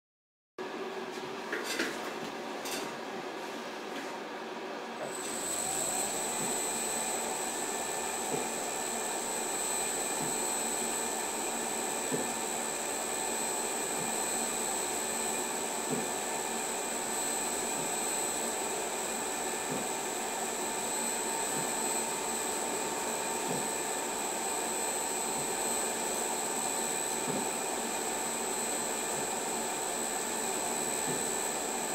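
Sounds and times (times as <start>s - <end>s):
polishing machine motor whine: 5.1s - 31.9s.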